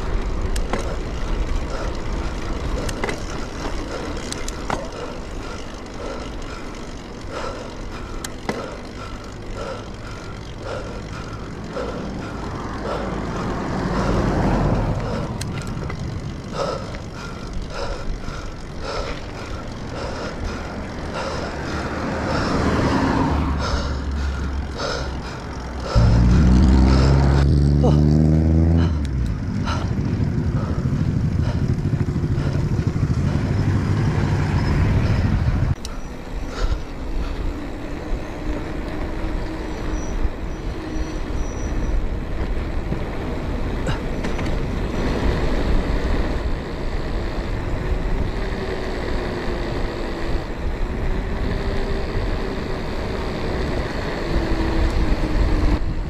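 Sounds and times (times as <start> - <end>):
motor vehicle engine: 0.0 - 56.0
traffic noise: 0.0 - 56.0
wind rushing over camera: 0.0 - 56.0.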